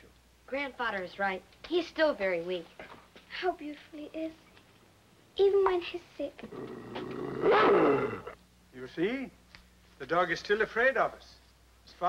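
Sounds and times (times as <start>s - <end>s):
dog growling: 6.4s - 8.4s.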